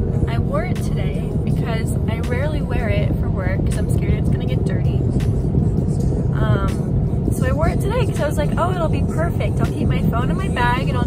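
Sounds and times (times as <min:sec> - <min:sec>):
car road rumble: 0:00.0 - 0:11.0
woman talking: 0:00.3 - 0:05.0, 0:06.4 - 0:11.0.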